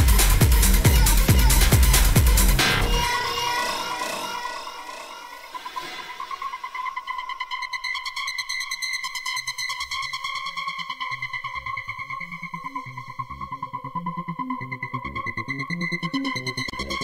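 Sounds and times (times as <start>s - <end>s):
electronic dance music: 0.0s - 12.2s, 13.2s - 17.0s
pulsing synthesizer line: 0.0s - 17.0s.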